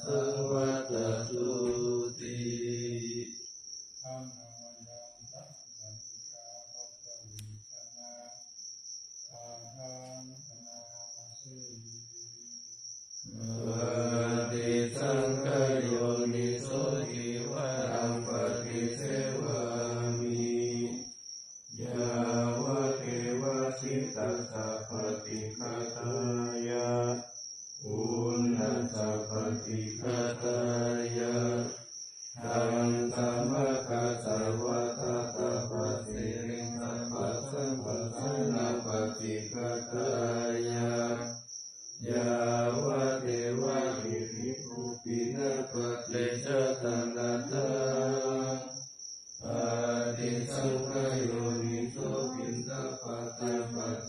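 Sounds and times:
monks chanting: 0.0 - 3.4, 13.3 - 21.1, 21.8 - 31.8, 32.4 - 41.4, 42.0 - 48.8, 49.4 - 54.0.

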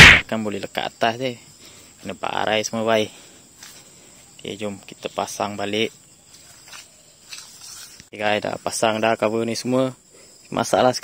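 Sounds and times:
faint high insect-like hiss: 0.0 - 11.0.

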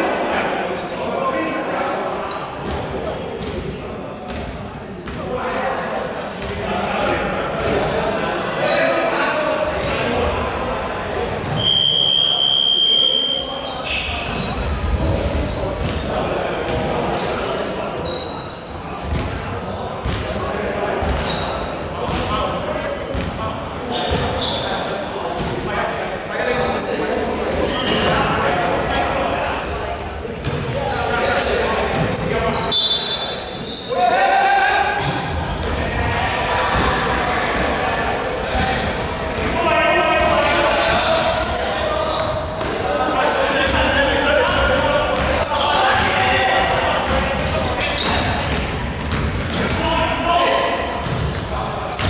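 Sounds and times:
players and spectators calling out: 0.0 - 52.0
sneaker squeaks: 6.4 - 7.9, 8.5 - 25.5, 26.3 - 34.1, 34.9 - 42.8, 43.6 - 52.0.

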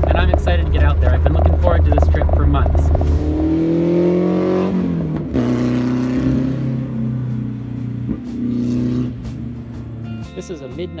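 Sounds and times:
car engine revving: 0.0 - 10.9.

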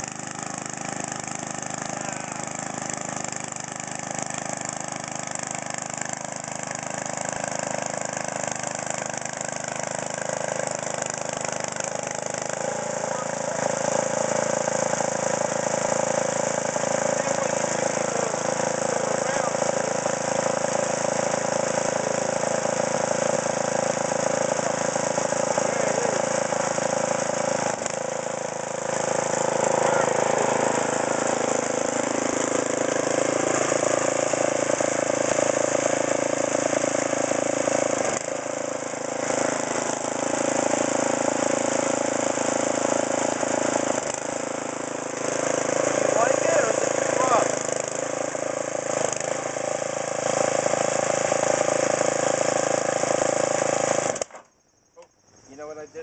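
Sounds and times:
tines churning through sod: 0.0 - 54.4
tiller engine running: 0.0 - 54.5.

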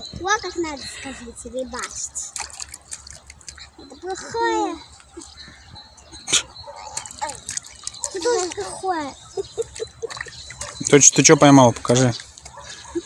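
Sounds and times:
quiet water sounds: 0.0 - 13.0
small splash in water: 2.3 - 3.7.

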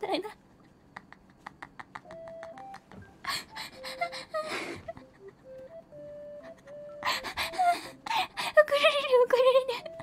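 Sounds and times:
breathy laugh: 0.7 - 5.6.

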